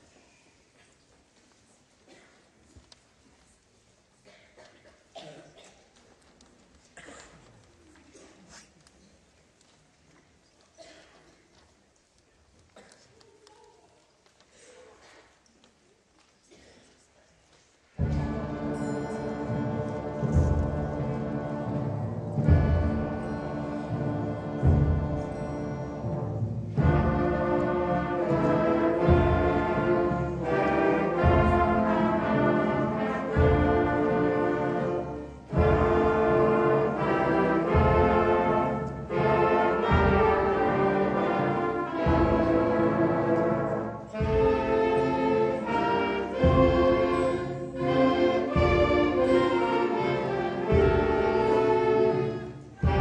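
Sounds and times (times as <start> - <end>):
concert band playing: 18.0 - 53.0.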